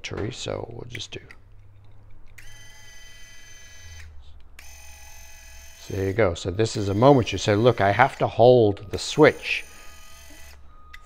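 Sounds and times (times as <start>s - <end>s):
small electric motor whining: 2.4s - 11.0s.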